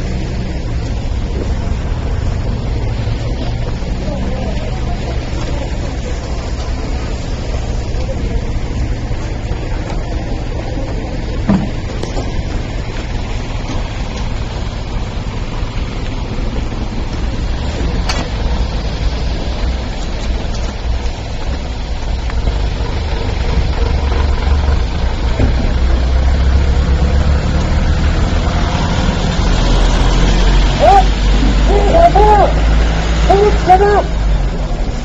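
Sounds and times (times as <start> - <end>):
outdoor noise: 0.0 - 35.0
vehicle engine idling: 0.0 - 35.0.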